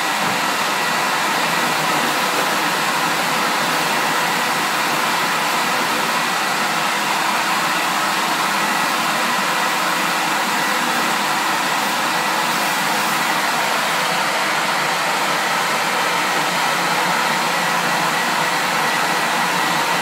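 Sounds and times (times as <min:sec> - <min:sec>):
vacuum motor running: 0:00.0 - 0:20.0.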